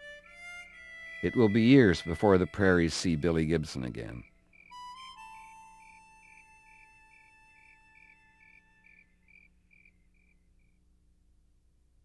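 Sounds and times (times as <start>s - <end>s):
harmonica chord: 0.0s - 8.9s
crickets chirping: 4.1s - 10.9s.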